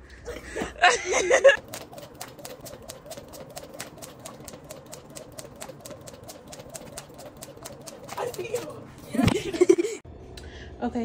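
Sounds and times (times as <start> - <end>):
woman laughing: 0.3 - 1.6, 9.0 - 10.0
jump rope slapping pavement: 1.5 - 9.7
woman talking: 8.1 - 9.8, 10.8 - 11.0.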